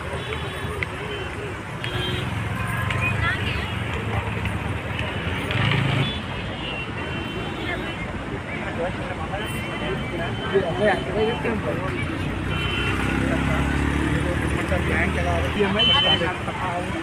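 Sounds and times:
indistinct voices talking: 0.0s - 17.0s
road traffic rumble: 0.0s - 17.0s.

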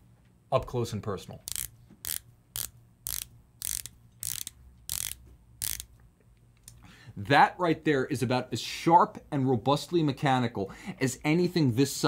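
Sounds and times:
watch bezel ratchet clicks: 1.4s - 5.9s.

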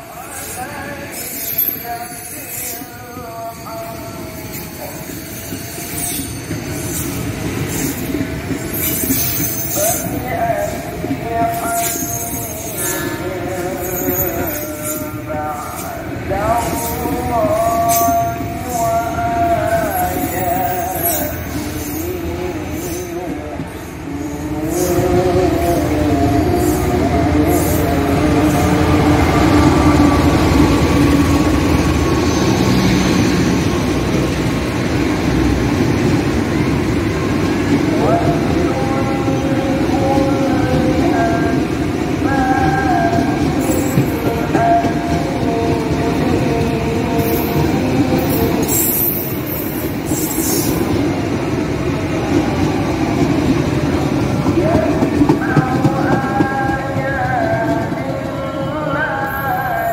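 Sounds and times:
train passing rumble: 0.0s - 59.9s.

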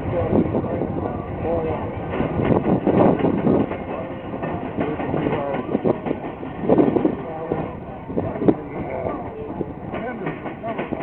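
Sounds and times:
train rumble: 0.0s - 11.0s
train wheels clacking over rail joints: 1.4s - 11.0s.

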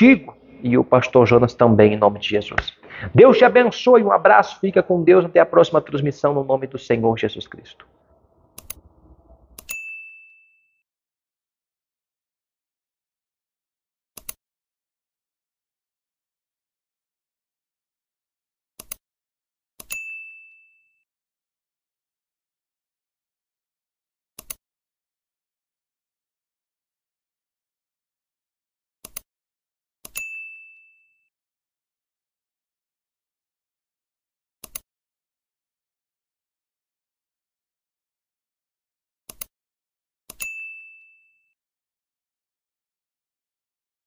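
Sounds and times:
mouse click: 8.6s - 8.8s
bright bell ding: 9.7s - 10.5s, 40.4s - 41.3s
high bell ding: 9.7s - 10.7s, 19.9s - 20.9s, 30.2s - 31.1s, 40.4s - 41.5s.

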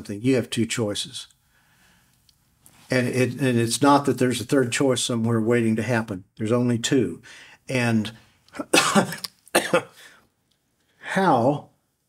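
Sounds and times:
man coughing: 8.6s - 10.2s.

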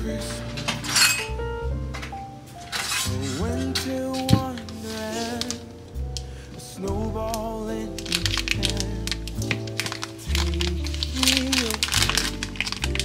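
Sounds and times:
song with singing voice: 0.0s - 1.3s, 2.7s - 13.0s
plastic wrapper crinkling: 2.6s - 6.3s, 7.2s - 13.0s.

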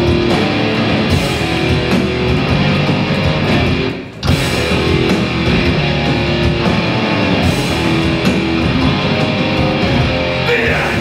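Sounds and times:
bass guitar: 0.0s - 11.0s
distorted electric guitars: 0.0s - 11.0s
drums with crashing cymbals: 0.0s - 11.0s.

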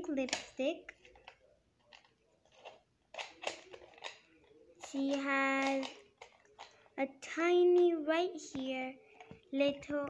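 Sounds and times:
fingers tapping and rubbing plastic: 0.2s - 6.8s.

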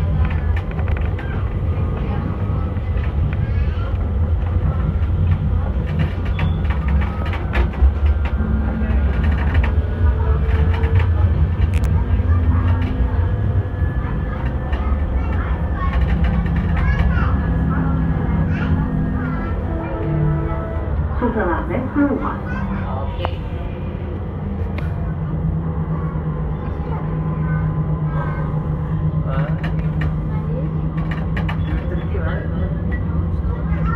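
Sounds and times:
faint passenger voices: 0.0s - 33.9s
tram wheels and motors rumbling: 0.0s - 33.9s
clicks and rattles: 5.0s - 9.8s, 14.4s - 17.2s.

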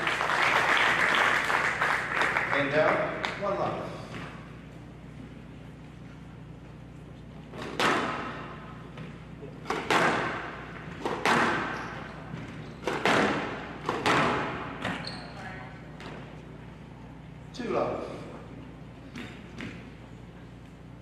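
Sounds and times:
squash ball hitting rackets and walls: 7.5s - 15.2s, 19.0s - 20.0s.

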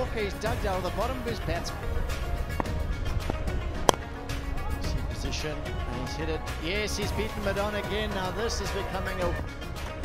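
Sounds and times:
music with steady bass beat: 0.0s - 10.0s
cricket bat striking ball: 2.5s - 4.1s.

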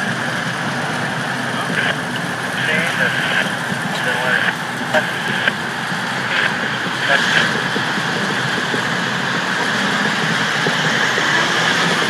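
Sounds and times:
truck engine rumbling: 0.0s - 12.0s.

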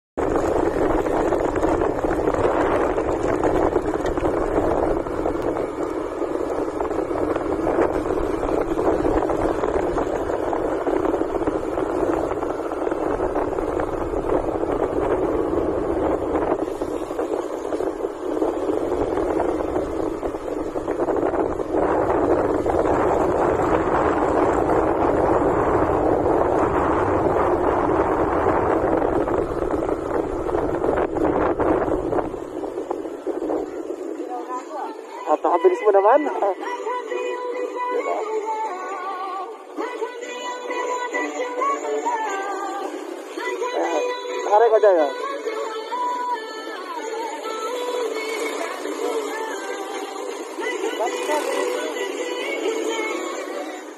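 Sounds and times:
motorcycle road noise: 0.2s - 53.9s
wind buffeting microphone: 0.2s - 53.9s.

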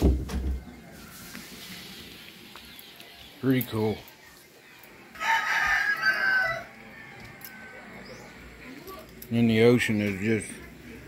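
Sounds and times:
rooster crowing: 5.1s - 8.1s.

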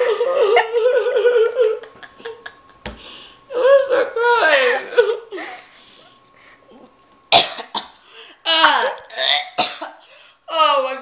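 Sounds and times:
woman coughing and gagging: 7.3s - 8.0s, 9.1s - 10.0s.

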